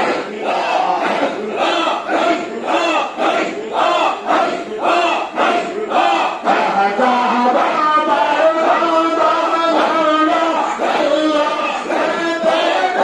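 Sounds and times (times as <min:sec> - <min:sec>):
crowd of men chanting: 0:00.0 - 0:13.0.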